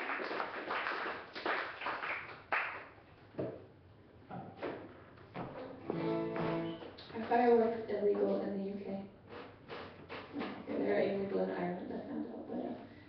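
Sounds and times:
applause: 0.0 - 3.0
acoustic guitar strings plucked: 5.5 - 7.0
guitar chord ringing: 5.8 - 6.9.

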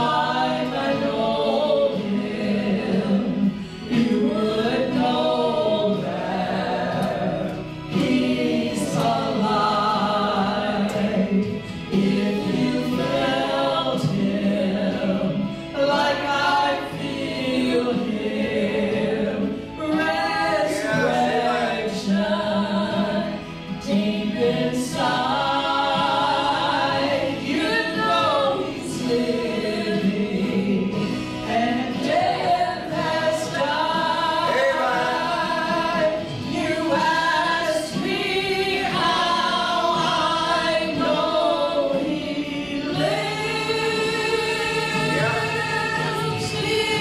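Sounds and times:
women singing gospel song: 0.0 - 47.0.

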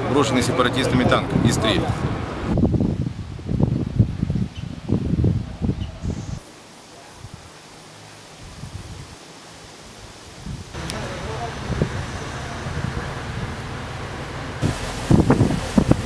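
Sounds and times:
wind buffeting microphone: 0.6 - 6.4, 8.4 - 9.2, 10.2 - 16.0
open-air background hiss: 2.5 - 16.0.

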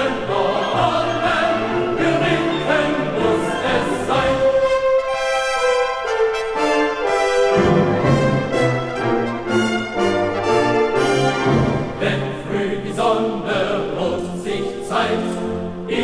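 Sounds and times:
choir singing: 0.0 - 16.0
brass band playing march: 0.3 - 12.2.

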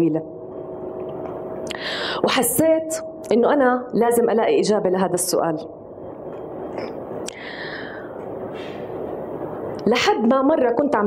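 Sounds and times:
soft breathing into microphone: 1.7 - 2.2, 6.8 - 9.0.

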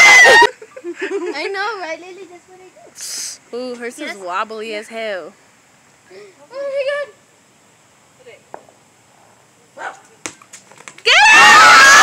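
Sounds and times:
basketball bouncing on concrete: 8.5 - 8.8, 9.8 - 11.2.

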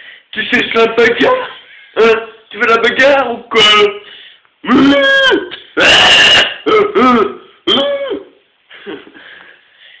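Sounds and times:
cat meowing harshly: 5.8 - 6.6.

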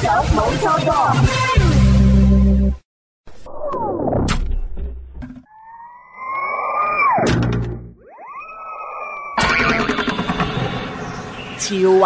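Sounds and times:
rising siren-like electronic tone: 5.5 - 11.7.

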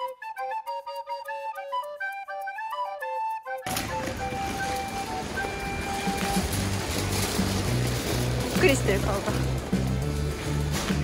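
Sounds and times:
light melodic background music: 0.0 - 11.0
shopping cart rattling on pavement: 3.7 - 11.0.

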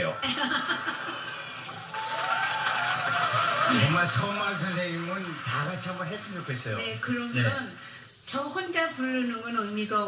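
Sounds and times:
concert audience clapping and cheering: 1.7 - 7.0.

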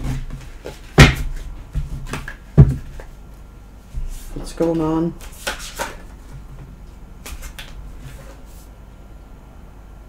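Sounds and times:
cards being shuffled: 4.6 - 6.1, 7.2 - 8.6.

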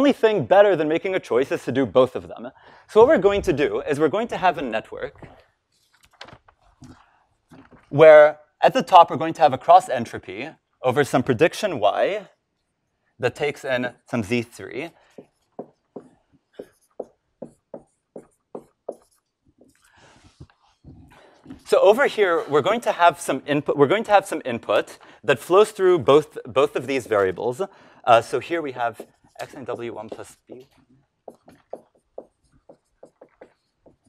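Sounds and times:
marker writing on whiteboard: 14.9 - 22.0, 25.5 - 34.0.

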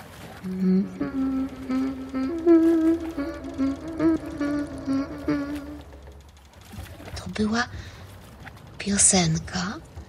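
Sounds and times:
woman humming lullaby: 0.4 - 6.2.

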